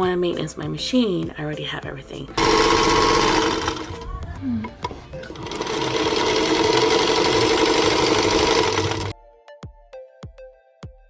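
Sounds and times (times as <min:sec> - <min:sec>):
music with an even beat: 0:00.0 - 0:11.0
sewing machine whirring: 0:02.4 - 0:04.1, 0:05.2 - 0:09.1.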